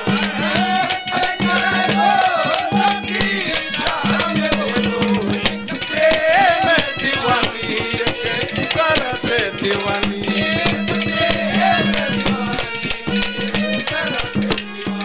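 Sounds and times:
man singing: 0.0 - 12.9, 13.7 - 15.0
hand drum beating: 0.0 - 15.0
harmonium held tone: 0.0 - 15.0.

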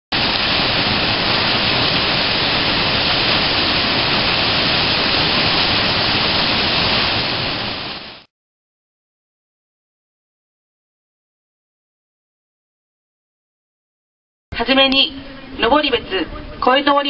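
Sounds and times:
water rushing into spillway pool: 0.1 - 8.3.

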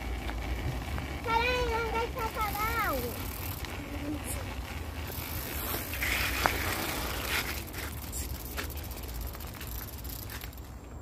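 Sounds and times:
bicycle tyres on gravel: 0.0 - 11.0.

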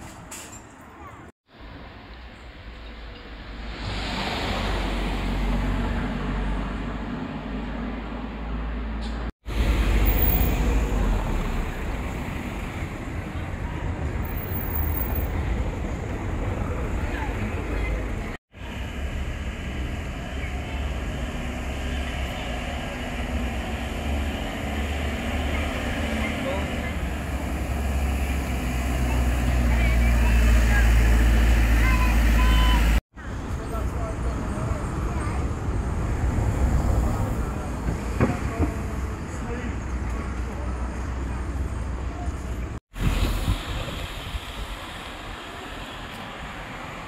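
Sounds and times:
road train engine rumble: 0.0 - 47.0
street traffic: 0.0 - 47.0
voices of passers-by: 0.0 - 47.0.

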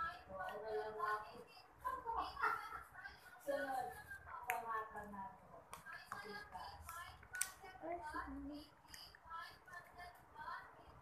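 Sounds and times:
quiet indistinct talking: 0.0 - 11.0.

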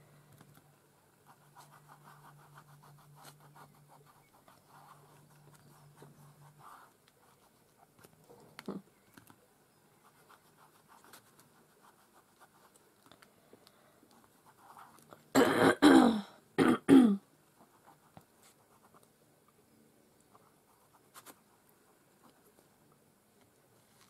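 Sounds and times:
fingers rustling on paper: 0.4 - 9.4, 10.0 - 13.3, 20.2 - 22.7
woman coughing: 15.4 - 17.2.

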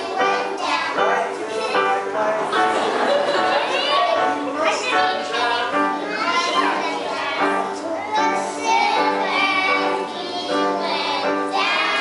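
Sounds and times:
children singing together: 0.0 - 12.0
musical accompaniment: 0.0 - 12.0.

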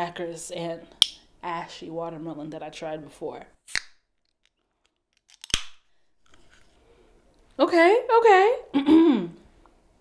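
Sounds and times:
can opening pop: 3.7 - 4.0, 5.3 - 5.8.

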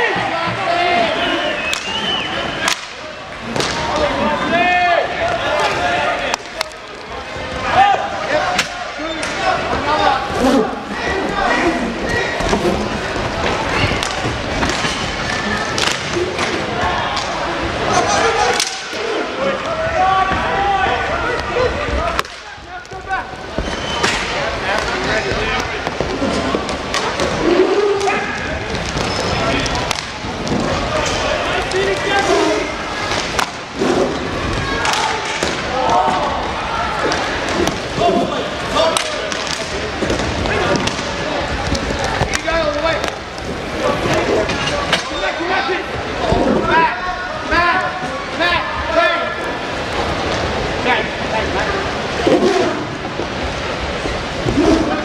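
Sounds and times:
hockey sticks and puck clacking: 0.0 - 4.2, 5.2 - 7.6, 8.3 - 10.4, 11.5 - 17.4, 18.1 - 19.0, 21.3 - 33.8, 34.4 - 36.2, 37.0 - 45.3
people shouting and chatting: 0.0 - 55.0.

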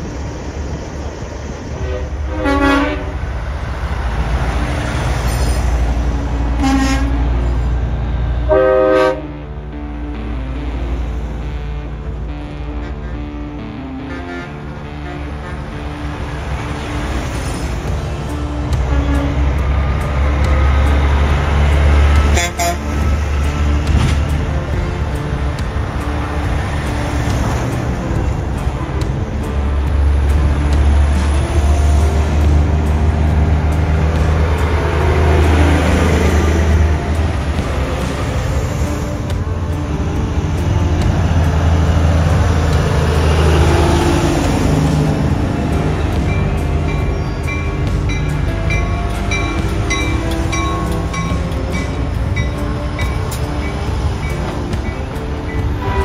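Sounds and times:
diesel trucks driving past: 0.0 - 56.0
truck horns tooting: 1.8 - 3.6, 4.5 - 56.0.

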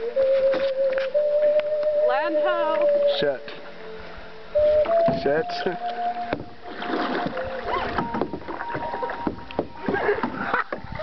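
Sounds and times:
paddle strokes in water: 4.8 - 11.0.

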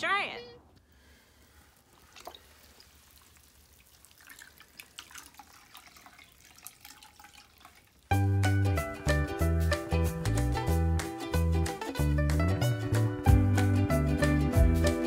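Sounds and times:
water splashes and drips: 1.3 - 8.3
music with plucked guitar and beat: 8.2 - 15.0.

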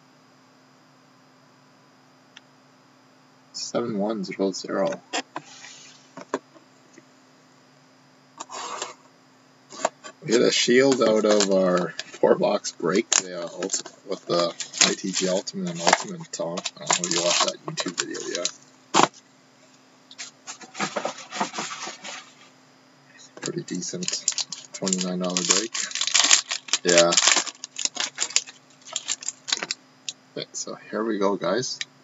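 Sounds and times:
objects rubbing and scraping: 5.1 - 6.4, 9.7 - 12.3, 13.0 - 19.2, 20.1 - 22.6
shrink wrap crinkling rustle: 9.8 - 18.6, 20.2 - 22.4, 23.4 - 29.8.

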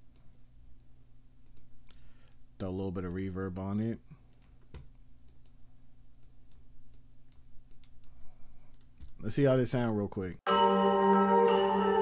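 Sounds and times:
computer mouse clicks: 1.4 - 2.0, 4.3 - 5.6, 6.2 - 9.2.

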